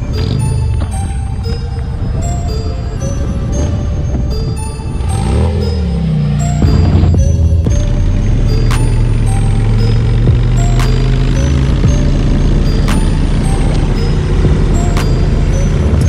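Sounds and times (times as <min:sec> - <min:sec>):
background music with deep bass: 0:00.0 - 0:16.0.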